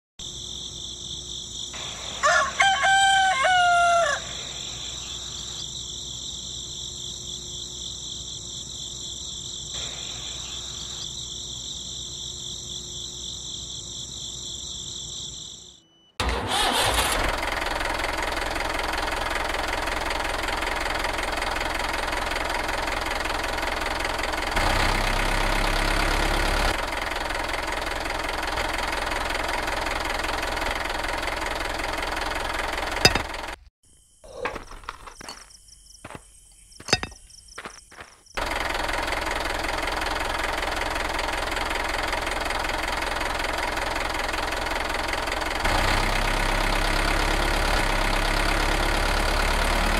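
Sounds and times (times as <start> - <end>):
insect chirring: 4.2 - 16.0
engine running: 9.7 - 11.6, 16.2 - 33.7, 37.9 - 49.9.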